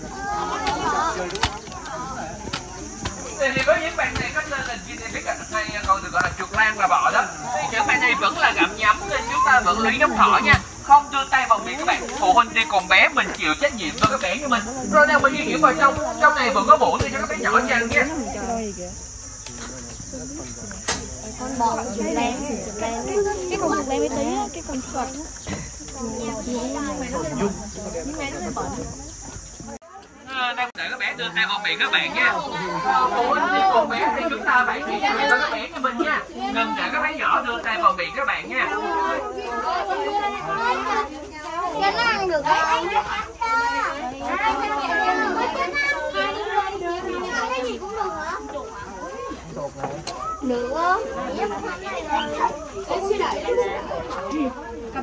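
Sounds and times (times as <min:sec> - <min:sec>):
high-pitched insect drone: 0:00.0 - 0:39.1
children chattering and calling out: 0:00.0 - 0:55.0
faint voices: 0:00.0 - 0:55.0.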